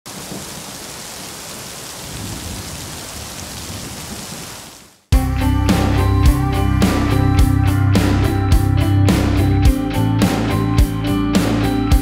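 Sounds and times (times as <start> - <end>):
heavy rain hissing: 0.1 - 9.4
thunder rumbling: 2.0 - 4.4.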